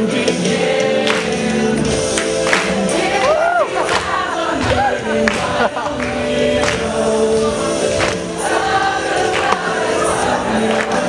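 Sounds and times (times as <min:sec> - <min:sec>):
choir singing held notes: 0:00.0 - 0:11.0.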